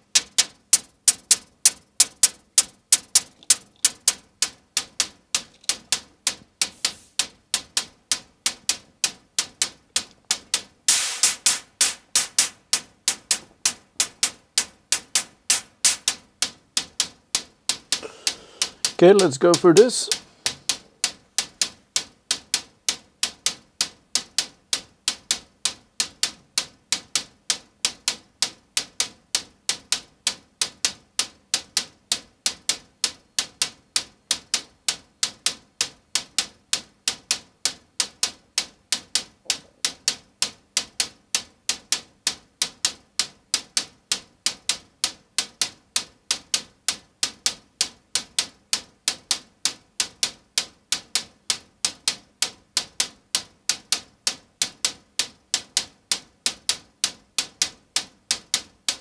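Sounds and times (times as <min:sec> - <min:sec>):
synthesized hi-hat ticks: 0:00.0 - 0:59.0.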